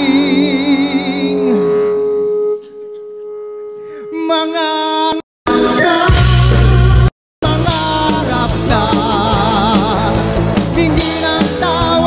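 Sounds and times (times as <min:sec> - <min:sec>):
live band holding notes: 0:00.0 - 0:12.0.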